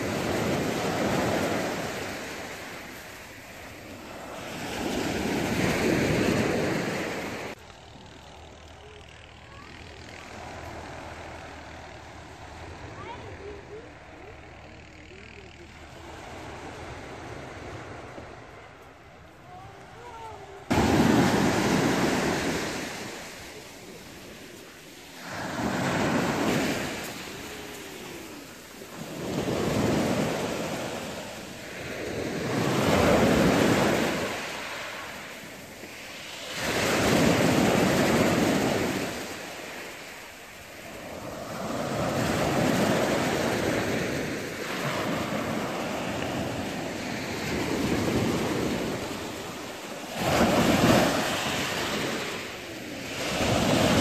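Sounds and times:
waves washing up pebble beach: 0:00.0 - 0:07.6, 0:20.6 - 0:54.0.

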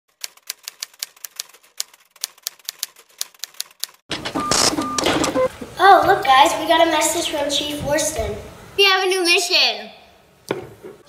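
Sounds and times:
short beeps: 0:04.4 - 0:05.5.

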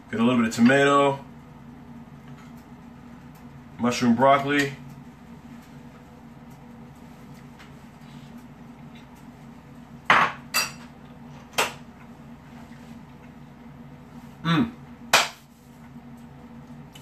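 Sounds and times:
low steady hum: 0:00.0 - 0:17.0.

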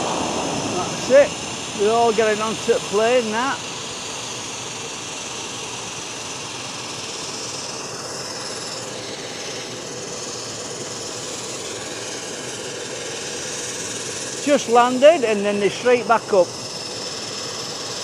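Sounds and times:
faint engine whine: 0:00.0 - 0:18.0
propeller plane engine running: 0:00.0 - 0:18.0.

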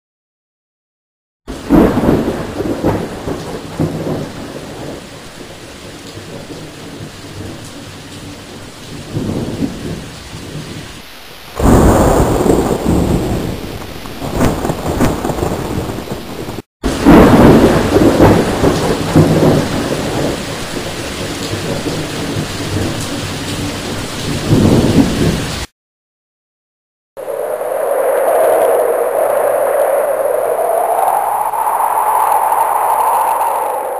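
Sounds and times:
thunder rumbling: 0:01.5 - 0:25.6, 0:27.2 - 0:33.9
steady rain: 0:01.5 - 0:25.7, 0:27.2 - 0:33.9.

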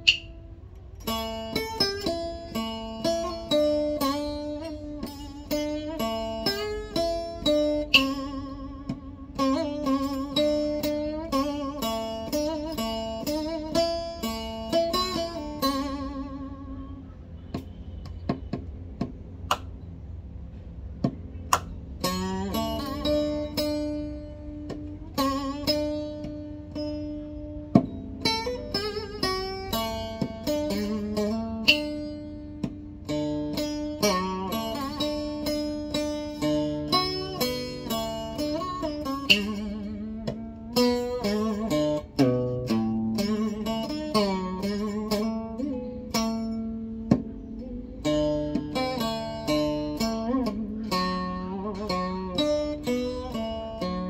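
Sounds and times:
acoustic guitar melody: 0:00.0 - 0:19.7, 0:21.0 - 0:54.0.

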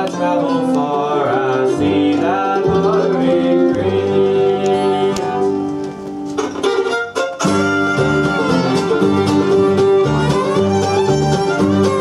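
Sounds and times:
acoustic guitar: 0:00.0 - 0:12.0
fiddle: 0:00.0 - 0:12.0
mandolin: 0:00.0 - 0:12.0
upright bass: 0:00.0 - 0:12.0.

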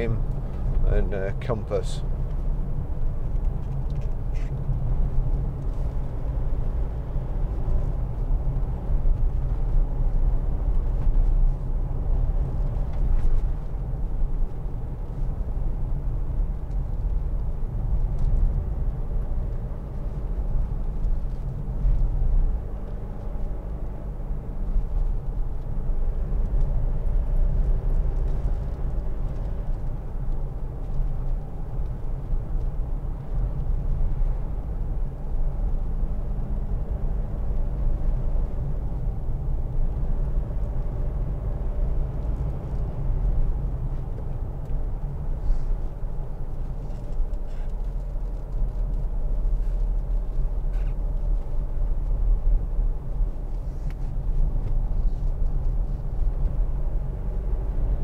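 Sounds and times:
road and tyre rumble: 0:00.0 - 0:58.0.

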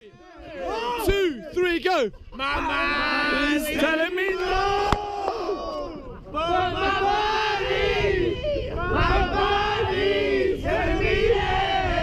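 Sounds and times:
men shouting wordlessly: 0:00.2 - 0:06.5.

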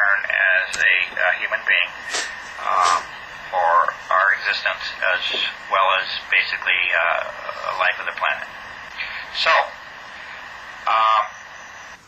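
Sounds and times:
call audio line hiss: 0:00.0 - 0:12.0
man saying uh: 0:00.2 - 0:09.8.

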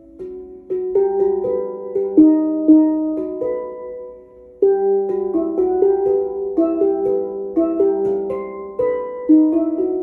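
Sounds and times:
steel pans played with sticks: 0:00.0 - 0:10.0.

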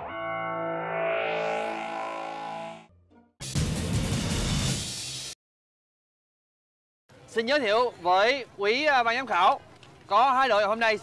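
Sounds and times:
heavily effected sustained chord: 0:00.0 - 0:02.9.

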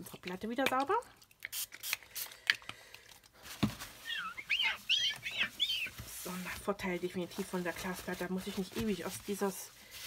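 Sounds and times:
cloth squeaking on glass: 0:04.0 - 0:06.1
cloth rubbing on glass: 0:04.0 - 0:10.0.

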